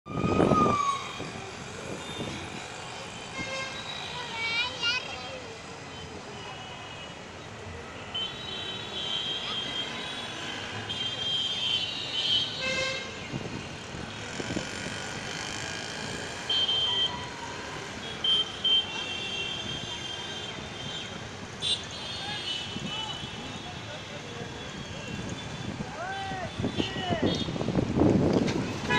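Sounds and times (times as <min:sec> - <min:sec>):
passing traffic: 0:00.1 - 0:28.9
vehicle horns honking: 0:08.0 - 0:13.2.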